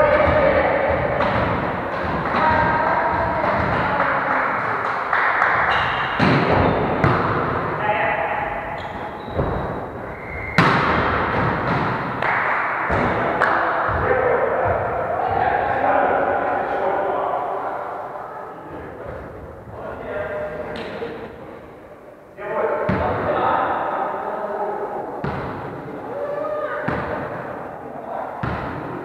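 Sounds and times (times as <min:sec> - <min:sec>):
players calling out: 0:00.0 - 0:21.1.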